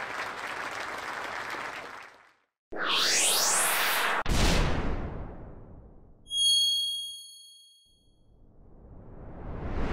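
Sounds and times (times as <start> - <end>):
whoosh: 2.7 - 5.8, 8.4 - 9.9
bright bell-like chime: 6.3 - 8.1.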